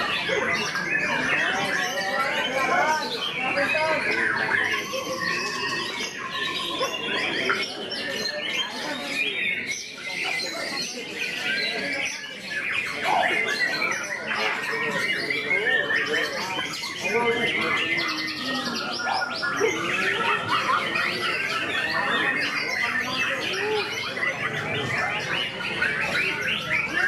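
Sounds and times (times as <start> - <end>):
other birds: 0.0 - 27.0
voices: 0.0 - 27.0.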